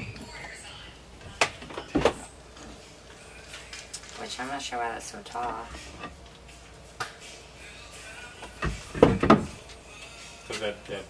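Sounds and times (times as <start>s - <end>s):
wooden board knocking on wood: 8.6s - 9.6s.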